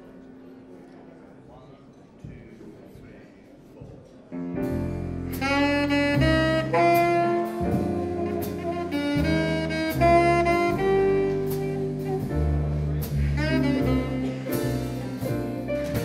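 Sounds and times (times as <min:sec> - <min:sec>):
double bass: 0:04.4 - 0:16.0
piano chords: 0:04.4 - 0:16.0
alto saxophone melody: 0:04.8 - 0:16.0.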